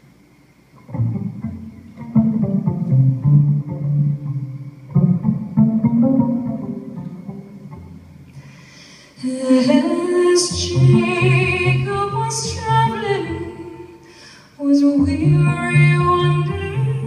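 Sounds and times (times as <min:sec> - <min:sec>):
cello and acoustic strings: 0:00.8 - 0:14.0, 0:14.8 - 0:17.0.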